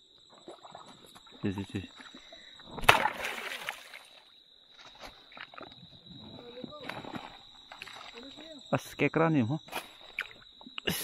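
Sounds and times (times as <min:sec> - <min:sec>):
sharp splash in stream water: 0:02.8 - 0:04.3.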